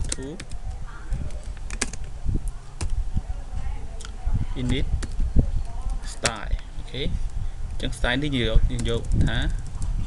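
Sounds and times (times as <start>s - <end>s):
computer keyboard typing: 0.0s - 3.0s, 8.7s - 9.9s.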